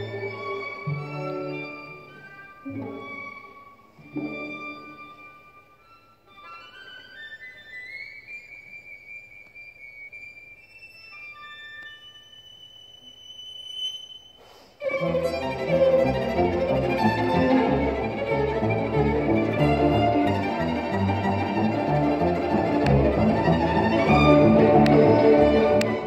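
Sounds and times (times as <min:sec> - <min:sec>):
high held violin line: 0:14.8 - 0:26.0
string orchestra chords: 0:14.8 - 0:26.0.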